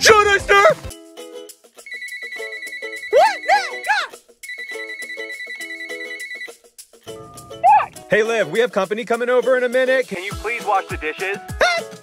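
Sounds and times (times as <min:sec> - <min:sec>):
soft music: 0:00.0 - 0:12.0
electronic phone ringing tone: 0:01.9 - 0:06.6.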